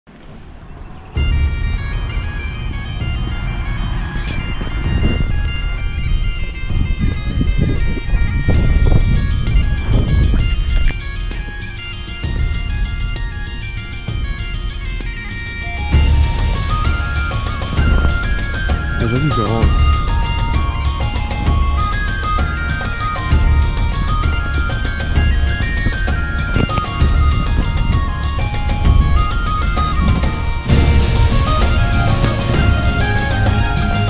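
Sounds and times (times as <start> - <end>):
bagpipe music with drone: 0.6 - 34.0.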